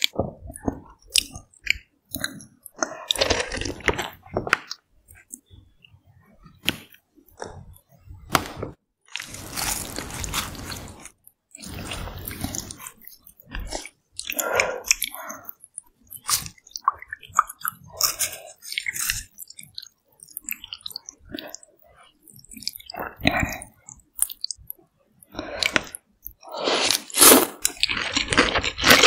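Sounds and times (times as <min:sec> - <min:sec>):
chewing: 0:00.0 - 0:05.5, 0:09.1 - 0:29.0.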